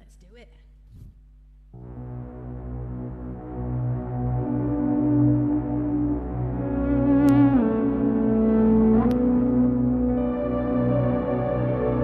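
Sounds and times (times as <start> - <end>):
low electrical hum: 0.0 - 6.8
synthesizer sustained chord: 1.8 - 12.0.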